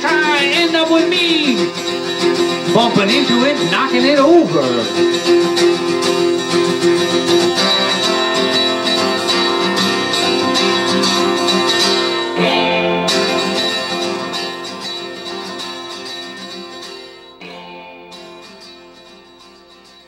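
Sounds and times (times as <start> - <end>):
acoustic guitar chords: 0.0 - 20.0.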